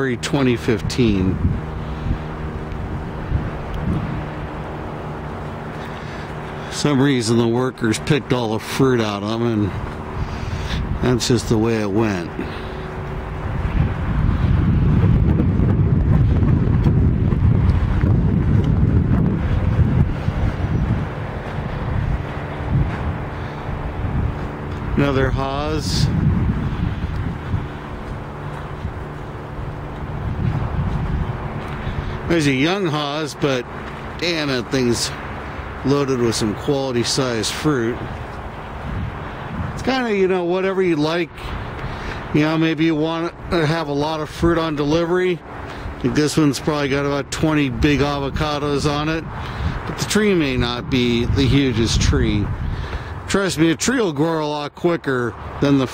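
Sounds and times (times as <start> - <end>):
wind on microphone: 0.0 - 6.7, 9.6 - 11.6, 12.2 - 32.8, 37.2 - 40.4, 44.2 - 53.5.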